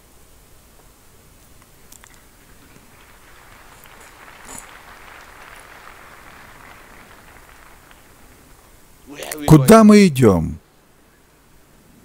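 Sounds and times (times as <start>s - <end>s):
large hall ambience hiss: 0.0s - 12.0s.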